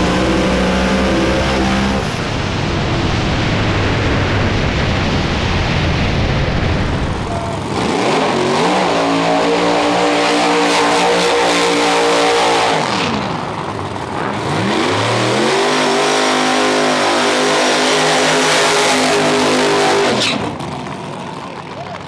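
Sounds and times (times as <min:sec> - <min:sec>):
car engine revving: 0:00.0 - 0:04.5, 0:07.1 - 0:20.8.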